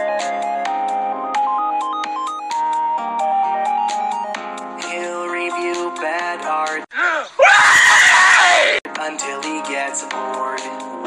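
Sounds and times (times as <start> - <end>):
synth music: 0.0 - 5.0
man screaming: 7.0 - 8.8.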